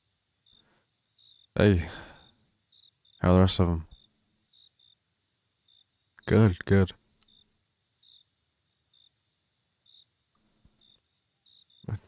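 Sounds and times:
cricket chirps: 0.0 - 12.0.

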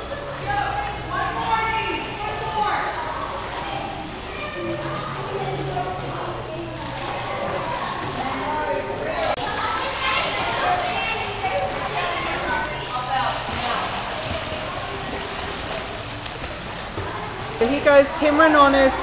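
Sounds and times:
children talking and calling out: 0.0 - 19.0
water splashing from swimming: 0.0 - 19.0.

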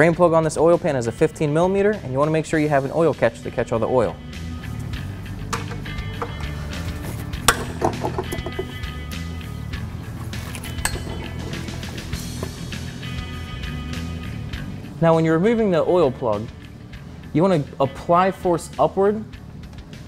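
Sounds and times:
background music with bass line: 0.0 - 20.0.

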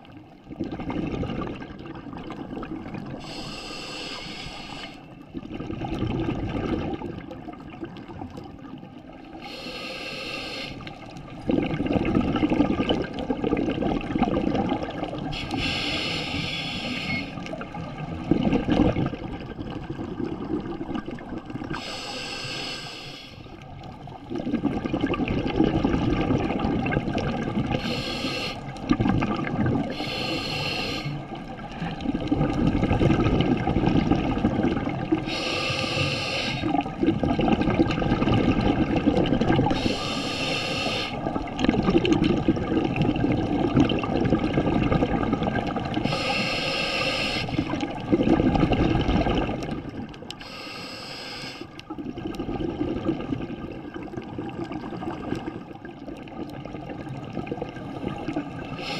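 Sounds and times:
rumbling rush of exhaled bubbles: 0.0 - 3.3, 5.2 - 9.4, 10.9 - 15.4, 17.4 - 21.8, 23.5 - 28.0, 28.6 - 30.0, 31.2 - 35.3, 36.6 - 40.0, 41.1 - 46.2, 47.5 - 50.4, 51.8 - 58.9
hiss of inhaled air: 3.2 - 5.1, 9.4 - 10.9, 15.4 - 17.4, 21.7 - 23.5, 27.8 - 28.7, 29.9 - 31.2, 35.2 - 36.7, 39.7 - 41.2, 46.0 - 47.7, 50.4 - 51.8.

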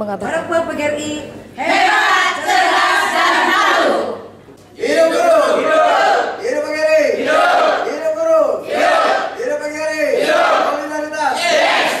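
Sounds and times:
crowd chanting in unison: 1.6 - 4.2, 4.8 - 6.4, 7.2 - 7.9, 8.6 - 9.4, 10.2 - 10.7, 11.4 - 12.0.

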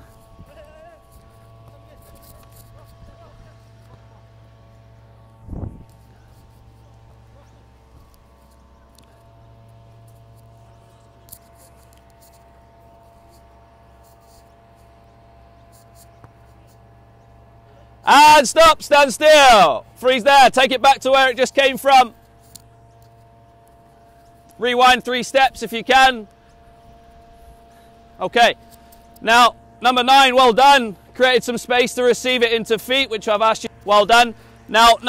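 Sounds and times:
steady low hum: 0.0 - 35.0
player shouting: 18.1 - 22.1.

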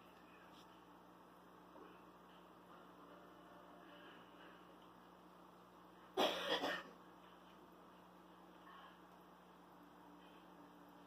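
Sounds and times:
person coughing: 6.2 - 7.0.

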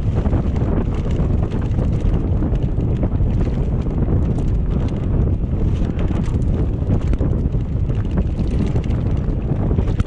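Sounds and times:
bike clicks and rattles: 0.0 - 10.0
tyres rumbling over dirt trail: 0.0 - 10.0
wind buffeting microphone: 0.0 - 10.0.

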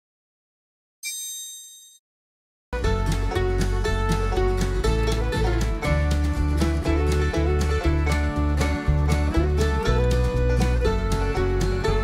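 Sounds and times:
high-pitched chime ding: 1.0 - 2.0
plucked string music: 2.8 - 12.0.

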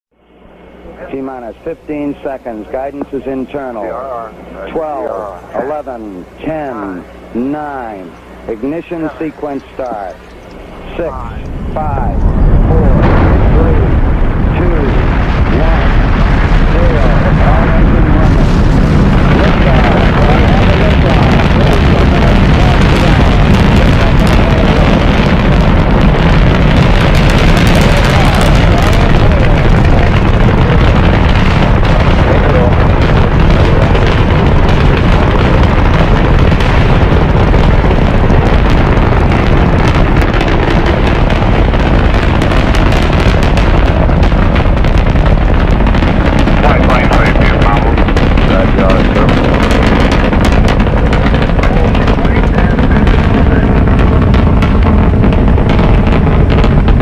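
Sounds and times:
rocket engines roaring and crackling: 0.1 - 57.0.

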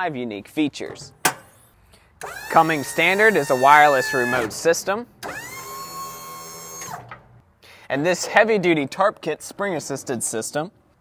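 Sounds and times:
hydraulic pump motor whine: 2.2 - 7.4.

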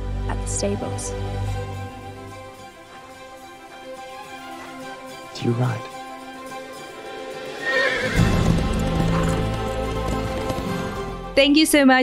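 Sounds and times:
film score music: 0.0 - 12.0
horse neighing: 7.4 - 10.4
galloping hoofbeats: 7.6 - 11.5.

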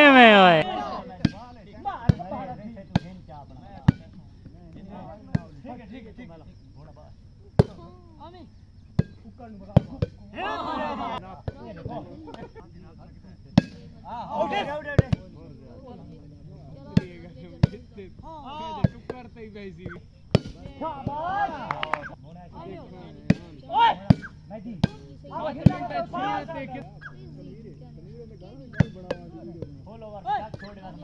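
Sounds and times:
players shouting: 0.0 - 1.0.

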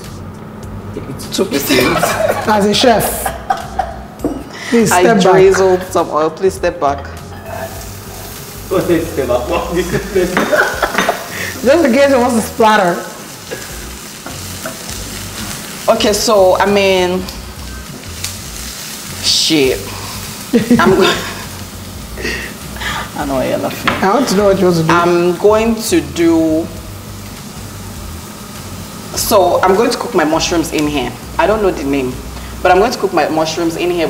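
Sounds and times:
vegetables sizzling in hot oil: 1.5 - 34.0.

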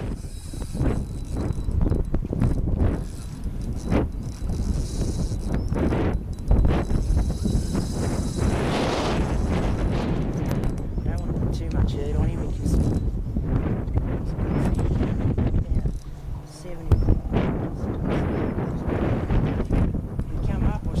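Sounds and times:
spinning reel clicking and whirring: 0.0 - 13.7
wind rumble on microphone: 0.0 - 21.0.

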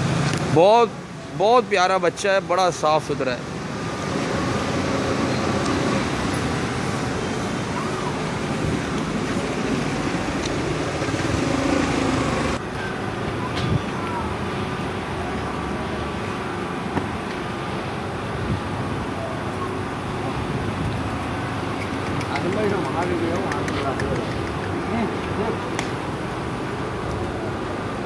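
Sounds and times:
distant traffic: 0.0 - 28.0.

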